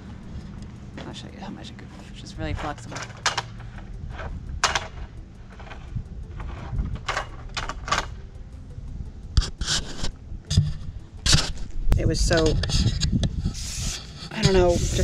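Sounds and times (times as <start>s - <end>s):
extension pole knocking and scraping: 1.8s - 8.2s, 9.4s - 11.6s, 12.3s - 15.0s.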